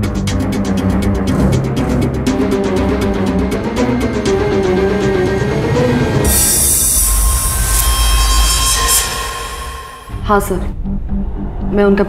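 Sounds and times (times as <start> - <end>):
low rumbling drone: 1.4 - 11.3
faint held tone: 6.3 - 10.4.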